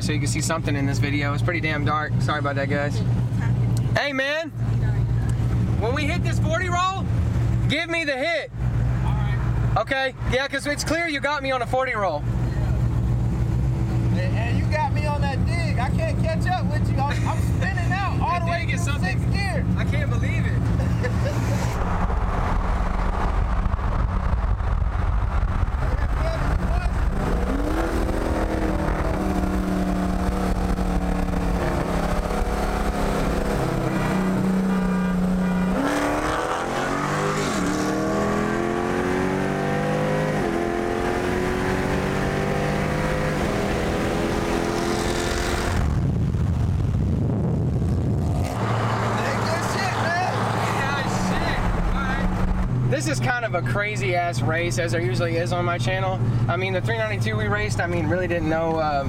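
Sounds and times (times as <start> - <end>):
road and wind noise: 0.0 - 59.0
cars accelerating at full throttle: 12.2 - 58.8.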